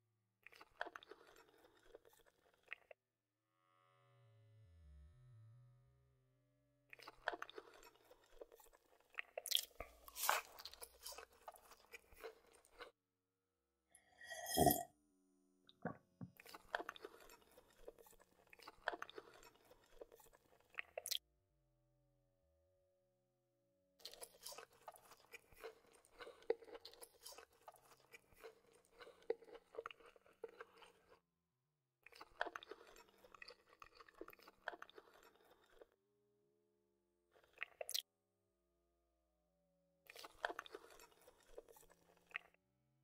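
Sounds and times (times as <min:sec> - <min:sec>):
chewing crunchy fries: 0:00.4 - 0:03.0, 0:06.9 - 0:13.0, 0:16.4 - 0:21.2, 0:24.0 - 0:31.3, 0:32.0 - 0:36.0, 0:37.3 - 0:38.1, 0:40.1 - 0:42.6.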